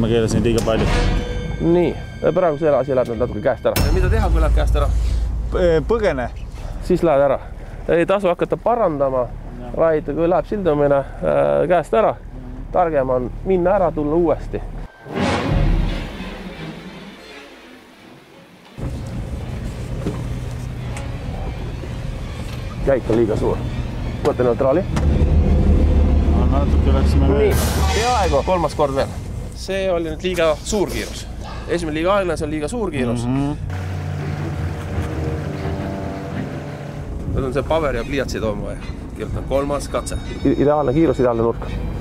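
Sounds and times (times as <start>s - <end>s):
boat engine humming: 3.5s - 14.8s, 18.8s - 27.6s, 28.4s - 42.0s
background music: 14.9s - 18.8s, 20.7s - 29.6s, 33.4s - 42.0s
boat engine low hum: 18.8s - 27.3s, 33.4s - 39.5s.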